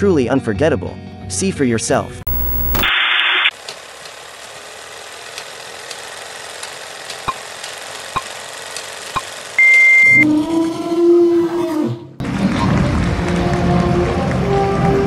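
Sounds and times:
short high beep: 0:09.6 - 0:10.2.

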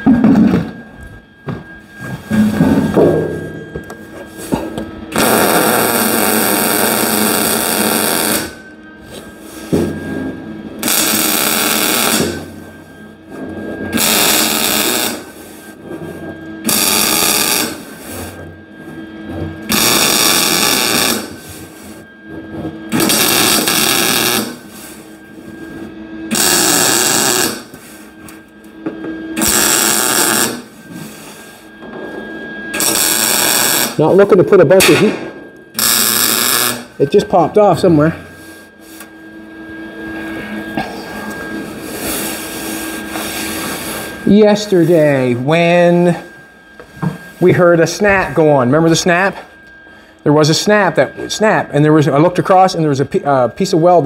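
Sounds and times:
welding arc crackle: 0:05.1 - 0:08.6, 0:10.8 - 0:12.5, 0:14.0 - 0:15.4, 0:16.6 - 0:18.2, 0:19.7 - 0:21.4, 0:22.9 - 0:24.6, 0:26.3 - 0:28.4, 0:29.4 - 0:30.8, 0:32.8 - 0:34.0, 0:35.8 - 0:36.9.

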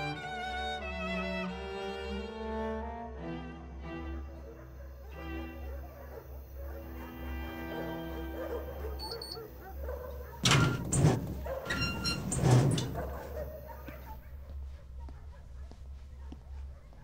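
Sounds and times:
bowed string music: 0:00.0 - 0:04.5.

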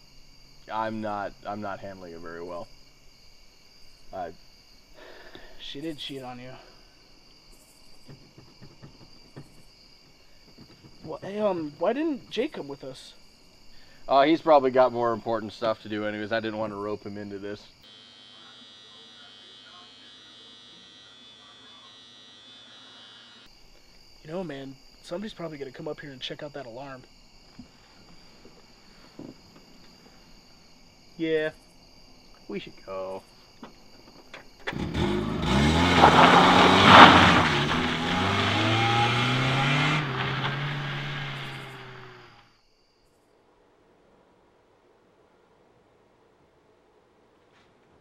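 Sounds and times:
electric razor buzzing: 0:17.8 - 0:23.5
car engine accelerating: 0:34.7 - 0:42.4.

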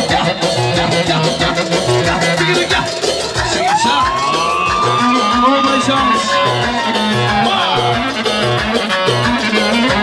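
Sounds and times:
crowd of guests: 0:00.0 - 0:10.0
live band music: 0:00.0 - 0:10.0.

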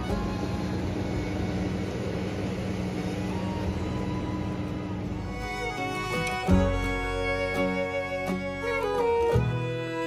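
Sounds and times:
motorboat engine running: 0:00.0 - 0:10.0.

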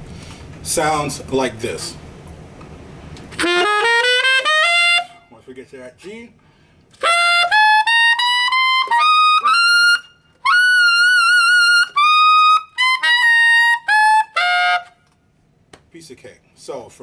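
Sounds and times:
tenor saxophone playing: 0:03.3 - 0:05.5, 0:06.9 - 0:15.1.

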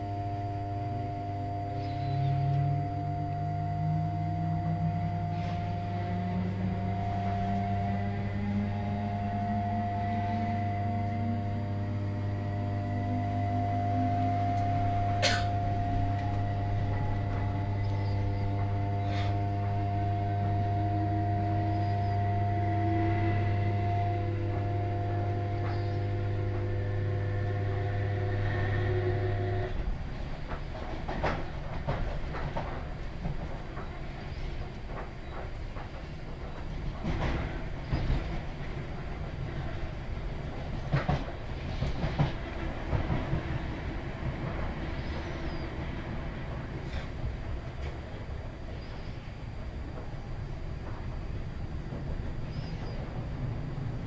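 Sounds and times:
train electrical hum: 0:00.0 - 0:54.0
wheel-on-rail rumble: 0:00.0 - 0:54.0.

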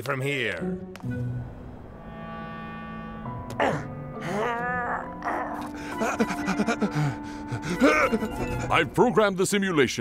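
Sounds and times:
cartoon background music: 0:02.2 - 0:10.0
wavering wailing vocal cry: 0:07.7 - 0:08.9.

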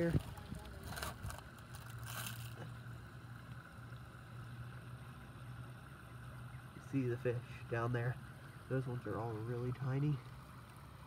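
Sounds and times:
creek water flowing: 0:00.0 - 0:11.0
low steady hum: 0:00.0 - 0:11.0.

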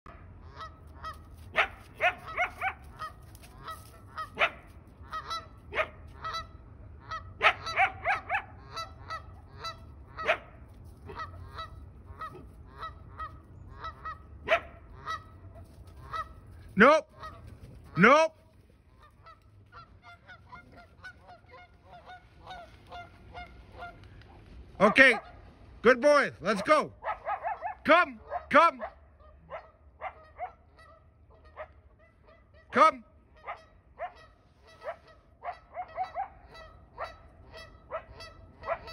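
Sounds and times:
animal honking calls: 0:00.4 - 0:18.2.

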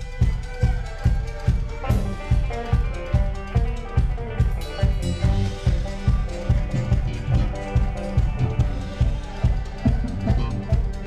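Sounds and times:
fiddle: 0:00.0 - 0:11.0
guitar: 0:00.0 - 0:11.0.

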